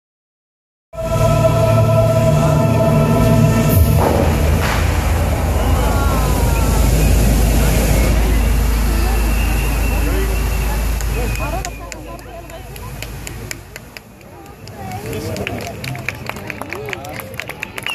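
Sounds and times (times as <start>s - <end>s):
indistinct crowd voices: 1.0s - 17.9s
fountain jets rushing: 1.4s - 17.9s.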